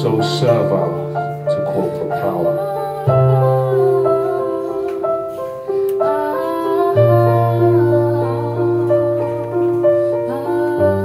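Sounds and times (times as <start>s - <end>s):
acoustic melody over held tones: 0.0s - 11.0s.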